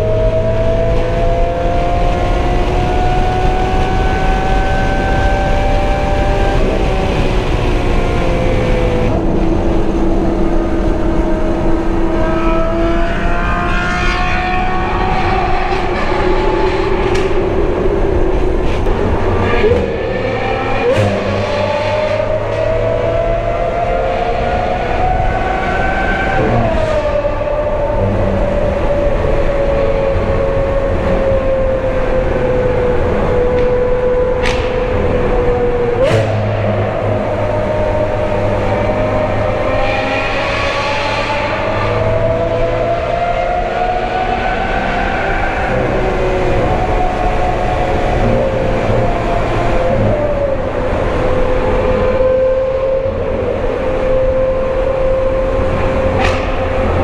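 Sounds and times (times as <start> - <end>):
car engine echoing in tunnel: 0.0 - 57.0.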